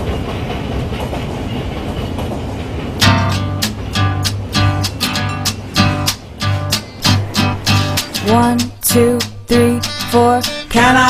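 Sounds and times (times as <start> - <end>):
train wheels rumbling on rails: 0.0 - 9.5.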